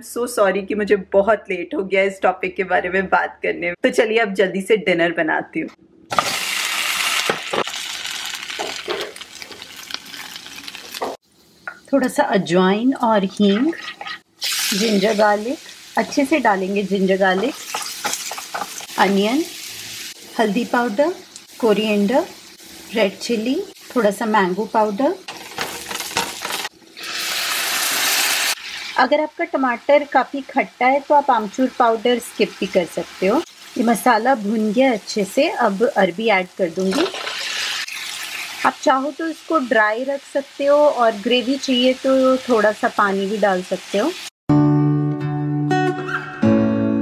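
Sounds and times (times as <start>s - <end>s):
food sizzling in hot oil: 6.1s - 44.4s.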